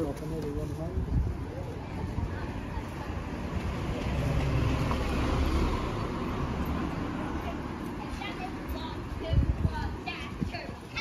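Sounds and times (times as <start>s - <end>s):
car driving past on wet street: 3.5s - 7.8s.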